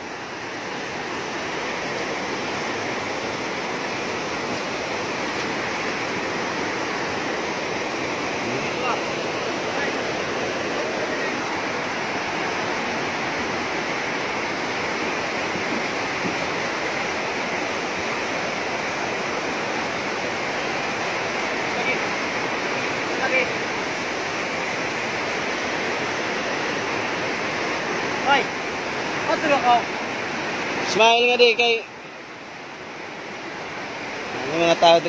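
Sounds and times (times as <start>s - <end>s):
river rapids rushing over rocks: 0.0s - 35.0s.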